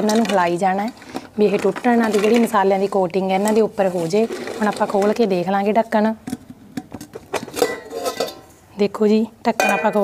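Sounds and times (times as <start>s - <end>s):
metal lid clinking and knocking: 7.3s - 8.5s, 9.6s - 10.0s.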